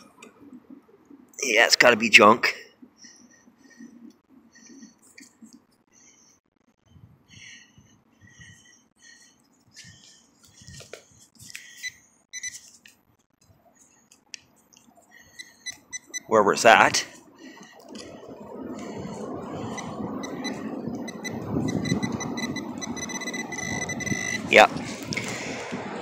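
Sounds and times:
short electronic beeps: 0:11.8 - 0:12.6, 0:15.4 - 0:16.3, 0:19.7 - 0:24.7.

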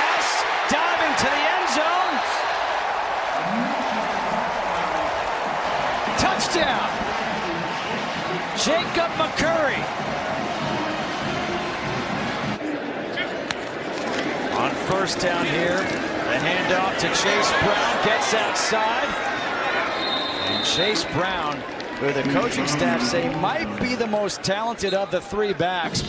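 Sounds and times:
people shouting and yelling: 0:00.0 - 0:12.6, 0:14.6 - 0:26.0
stadium crowd cheering: 0:00.0 - 0:26.0.

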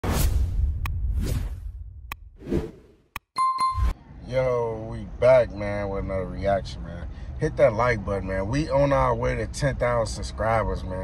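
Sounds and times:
whooshes: 0:00.0 - 0:03.0
bright ding: 0:03.4 - 0:04.0.

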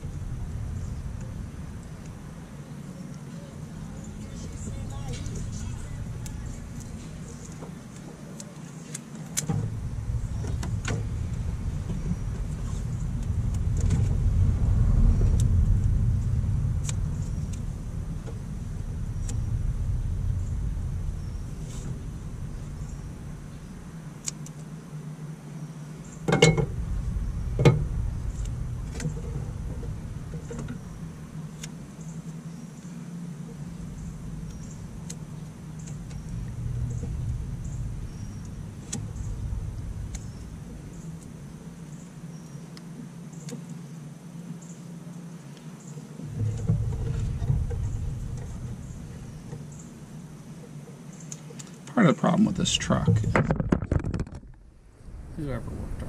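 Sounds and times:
low rumble: 0:00.0 - 0:08.4, 0:09.4 - 0:43.2, 0:46.2 - 0:56.0.

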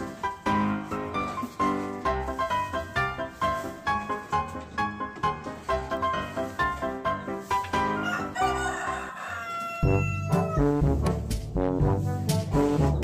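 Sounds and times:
background music with brass notes: 0:00.0 - 0:09.0, 0:09.8 - 0:13.0
rooster crowing: 0:08.0 - 0:10.6.

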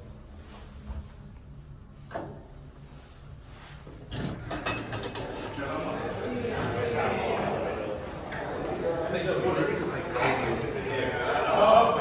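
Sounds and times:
elevator doors sliding open: 0:04.0 - 0:09.0.

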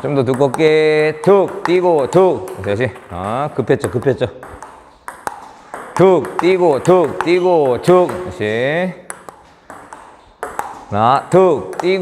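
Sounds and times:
table tennis ball clicks: 0:00.0 - 0:12.0.

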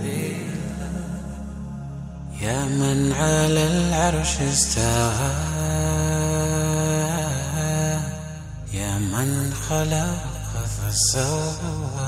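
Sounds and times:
low sustained drone: 0:00.0 - 0:12.0
person singing religious song: 0:00.0 - 0:12.0.

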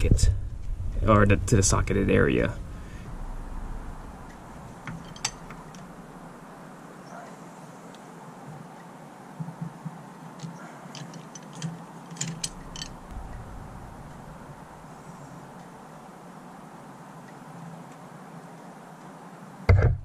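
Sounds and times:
low rumble: 0:00.0 - 0:06.4, 0:12.5 - 0:15.7.

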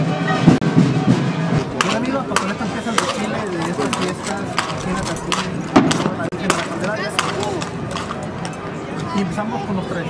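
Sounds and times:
crowd chatter: 0:00.0 - 0:10.0
horse hooves clopping on pavement: 0:01.6 - 0:09.2.

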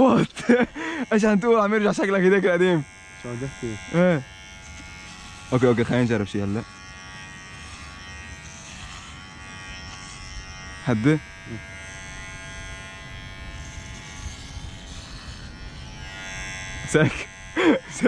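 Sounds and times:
electric hair clippers buzzing: 0:00.0 - 0:18.0.

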